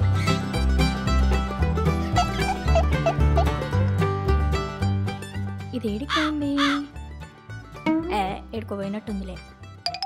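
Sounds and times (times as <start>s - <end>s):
plucked-string background music: 0.0s - 10.0s.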